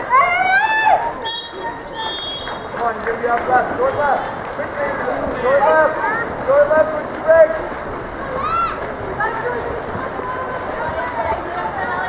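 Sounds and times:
spectators calling out: 0.0 - 12.0
high drawn-out shout: 8.3 - 8.8.

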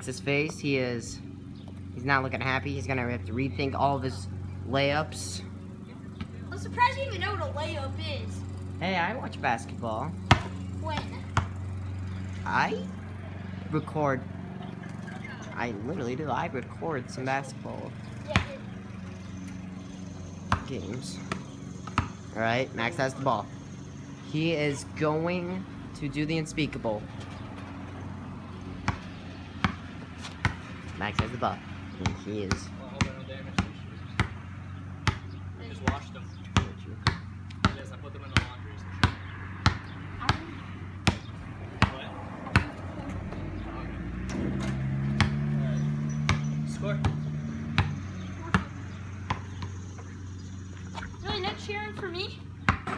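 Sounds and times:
basketball bouncing on concrete: 9.4 - 12.6, 17.5 - 22.4, 27.0 - 43.6, 44.3 - 52.9.

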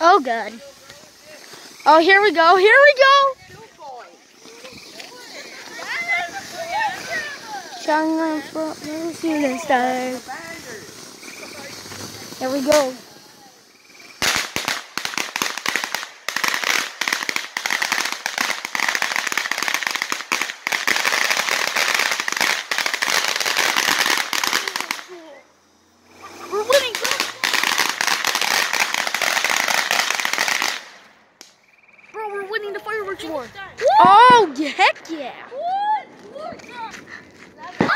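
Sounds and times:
firework fountain crackling: 0.0 - 37.9.

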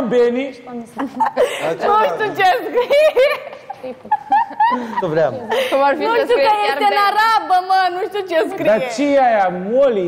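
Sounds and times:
man speaking: 1.4 - 2.6, 4.8 - 5.7, 8.6 - 10.0.

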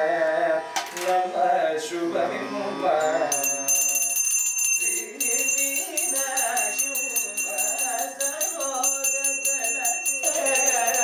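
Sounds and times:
devotional song: 0.0 - 11.0
brass hand bell ringing: 3.0 - 11.0.

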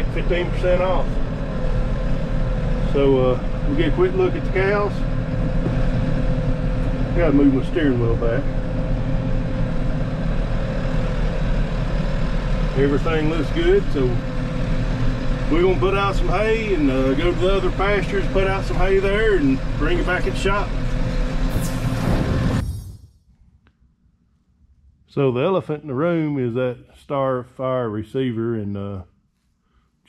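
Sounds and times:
tractor engine rumbling: 0.0 - 22.6
faint steady whine: 0.0 - 27.3.

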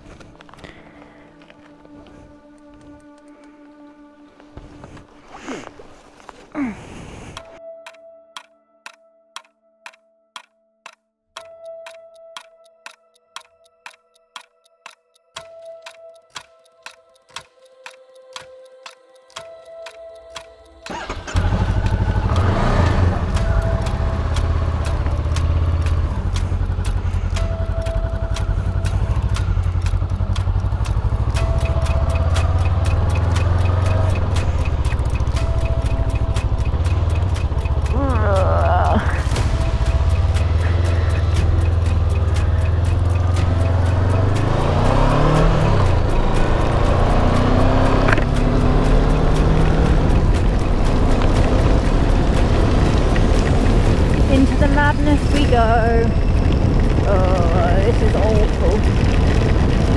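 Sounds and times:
motorcycle engine revving: 20.9 - 59.9.

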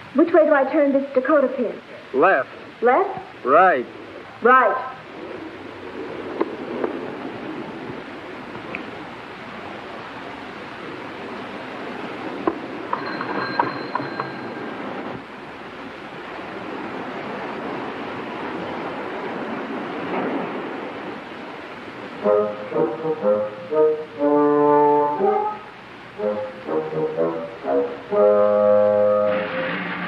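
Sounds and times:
steady rushing noise: 0.0 - 30.0
film score brass notes: 22.1 - 30.0.

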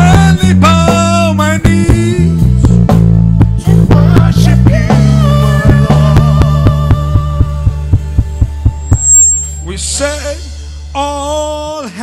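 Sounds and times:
steady beat: 0.0 - 9.8
low bass drone: 0.0 - 11.6.

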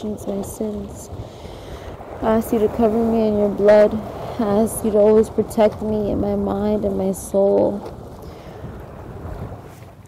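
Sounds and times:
small waves washing against rocks: 0.0 - 10.0
wind buffeting microphone: 0.0 - 10.0.

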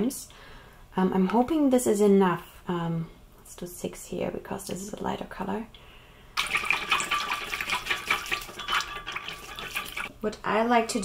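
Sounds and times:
whisk sloshing liquid in a jug: 6.4 - 10.1.

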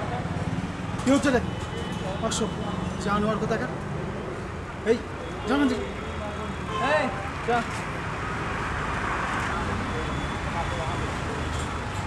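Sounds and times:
road traffic hum: 0.0 - 12.0.

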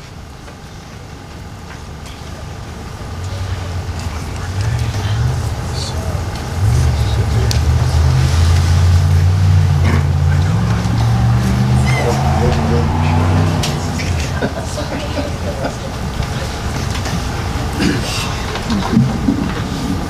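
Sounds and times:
vehicle engine running: 2.0 - 20.0.

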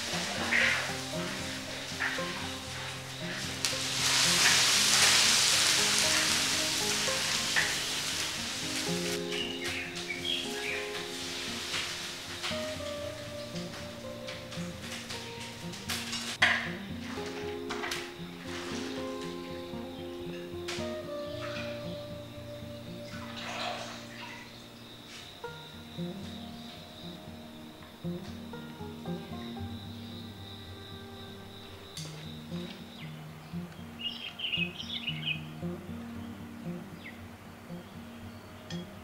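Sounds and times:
background music: 0.0 - 39.0
wok sizzling: 0.0 - 39.0.

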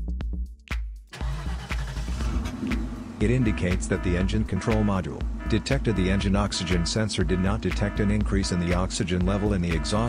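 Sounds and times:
background music with steady beat: 0.0 - 10.0
car engine rush and rumble: 1.1 - 4.6, 5.2 - 6.0.

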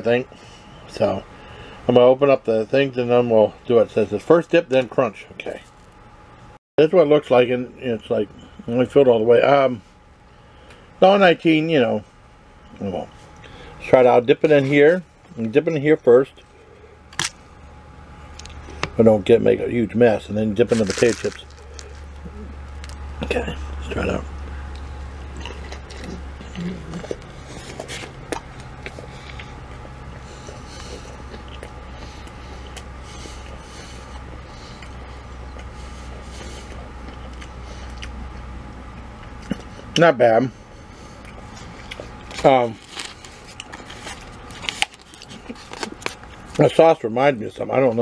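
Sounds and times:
low steady hum: 0.0 - 48.0
sandwich squishing into sauce: 20.6 - 23.2
person chewing crunchy food: 20.6 - 39.9, 41.1 - 46.6.

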